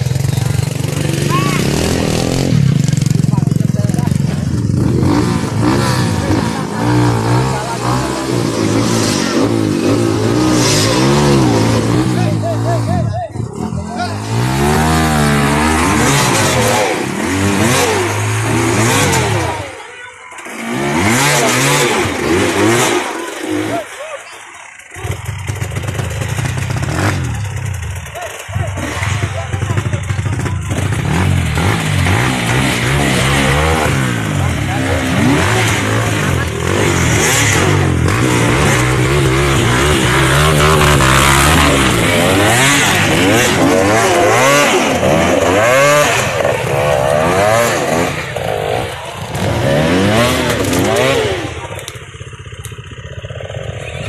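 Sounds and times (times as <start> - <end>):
motorcycle engines revving: 0.0 - 54.0
voices: 0.0 - 54.0.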